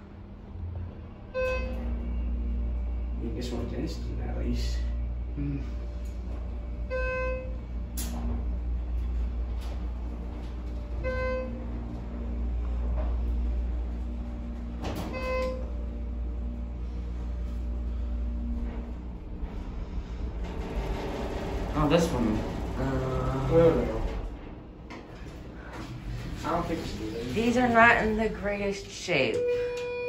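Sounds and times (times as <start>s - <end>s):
elevator hum: 0.0s - 30.0s.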